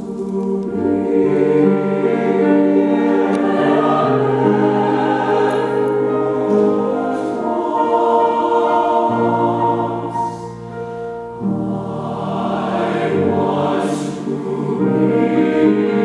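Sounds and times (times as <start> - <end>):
mixed choir singing: 0.0 - 16.0.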